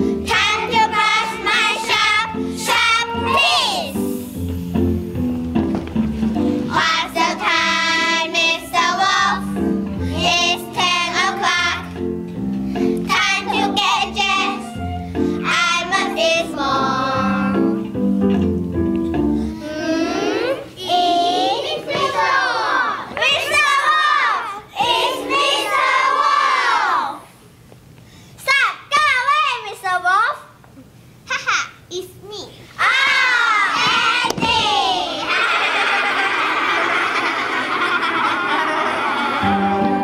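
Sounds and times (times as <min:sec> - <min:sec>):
children singing together: 0:00.0 - 0:04.1, 0:06.7 - 0:11.9, 0:13.1 - 0:14.8, 0:15.4 - 0:17.8, 0:19.7 - 0:27.2
recorded musical accompaniment: 0:00.0 - 0:20.8, 0:38.2 - 0:40.0.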